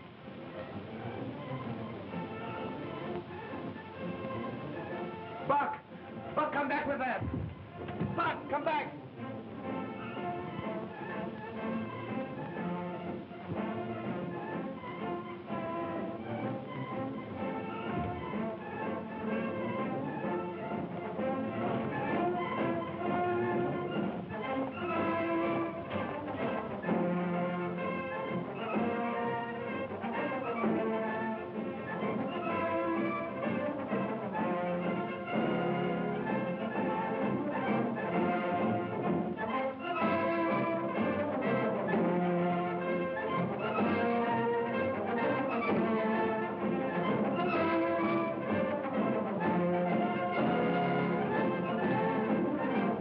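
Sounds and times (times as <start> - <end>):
orchestral strings melody: 0.0 - 53.0.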